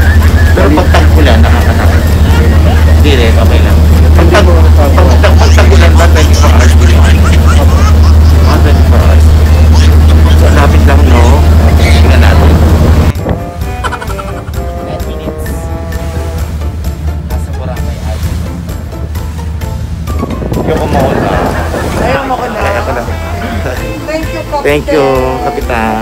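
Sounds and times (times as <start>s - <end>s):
voices: 0.0s - 13.1s, 13.7s - 16.6s, 20.5s - 26.0s
boat engine drone: 0.0s - 26.0s
music: 0.0s - 26.0s.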